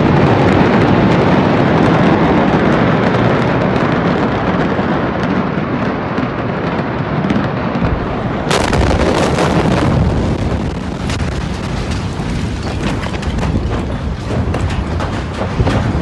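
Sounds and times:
large fire burning with pops: 0.0s - 16.0s
loud explosion blast and rumble: 0.0s - 16.0s.

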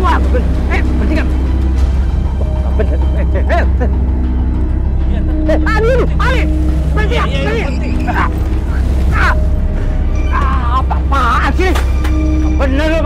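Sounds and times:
man crying out: 5.5s - 8.4s.

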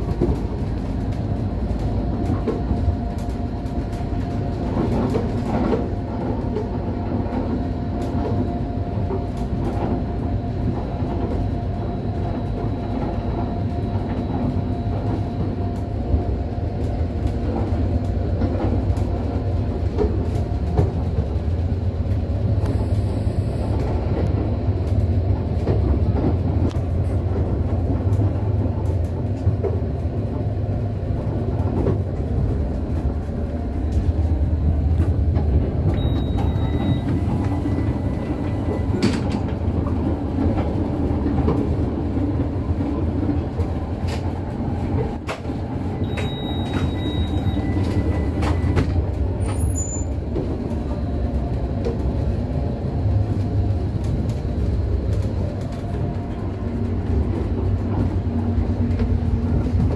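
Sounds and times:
train coach low rumble: 0.0s - 59.9s
short high beep: 36.0s - 37.1s, 46.0s - 48.7s.

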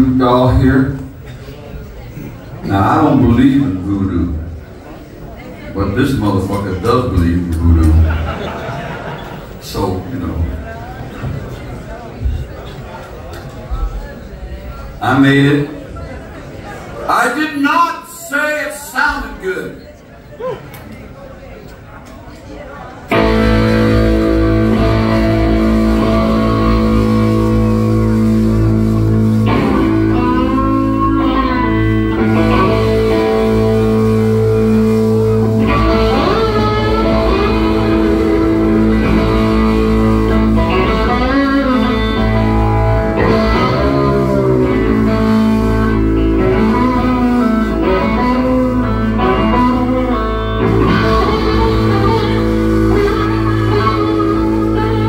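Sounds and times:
blues electric guitar: 23.1s - 55.0s.

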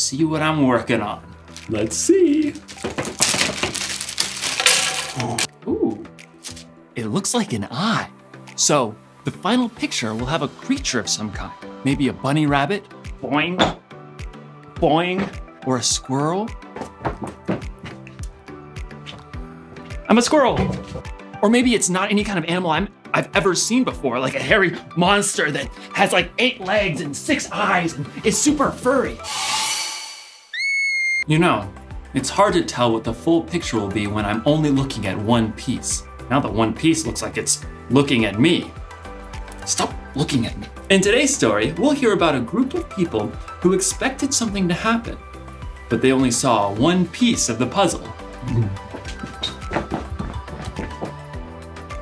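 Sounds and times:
puzzle pieces shifting: 1.5s - 5.5s, 6.4s - 6.7s
plastic bag crinkling: 2.4s - 5.5s
high whistle sound effect: 29.2s - 31.3s.

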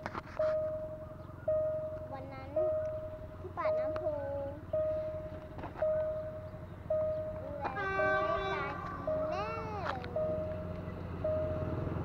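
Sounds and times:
low steady rumble: 0.0s - 12.0s
level crossing warning tone: 0.2s - 12.0s.

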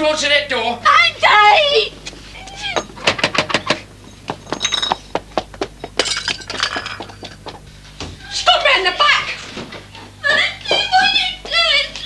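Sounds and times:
sharp knocks and clatters: 2.8s - 8.1s.

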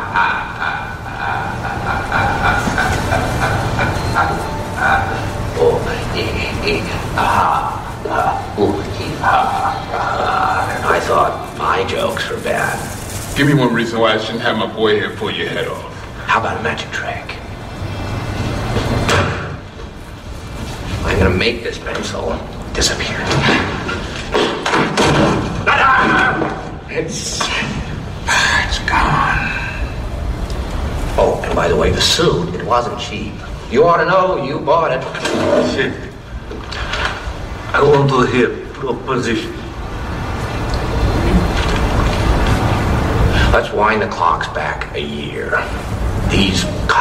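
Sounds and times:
man laughing slowly: 0.0s - 10.9s
man speaking: 0.0s - 17.5s, 21.0s - 23.9s, 25.6s - 30.1s, 31.1s - 36.2s, 37.7s - 39.8s, 43.4s - 47.0s.

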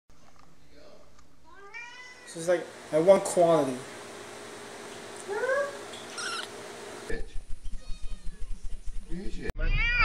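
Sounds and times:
cat meowing: 1.5s - 2.4s, 5.6s - 6.5s, 9.6s - 10.0s.

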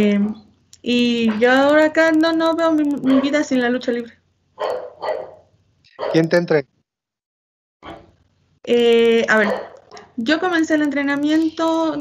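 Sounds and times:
dog barking: 3.0s - 3.5s, 4.6s - 6.4s, 7.8s - 8.1s, 9.3s - 10.1s.

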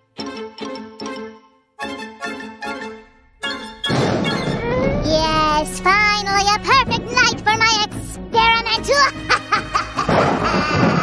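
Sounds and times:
background music: 0.0s - 11.0s
snickering laughs: 9.3s - 11.0s.

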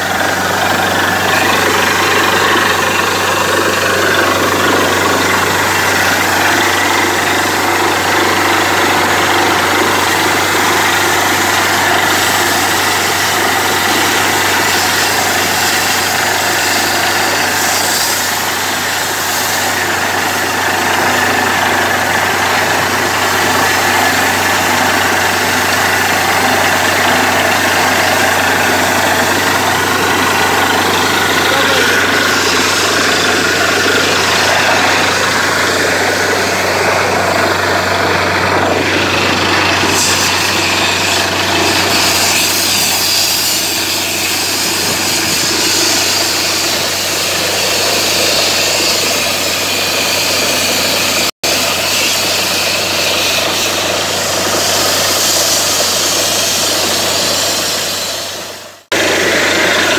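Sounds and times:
drilling rig engine humming: 0.0s - 59.9s
water and air spraying: 9.4s - 59.9s.

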